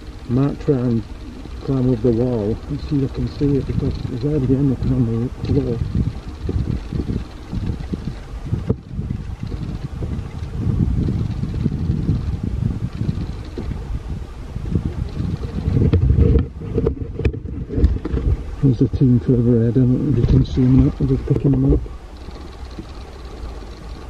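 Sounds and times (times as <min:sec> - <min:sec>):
wind buffeting microphone: 0:00.0 - 0:24.0
sharp clicks: 0:20.2 - 0:24.0.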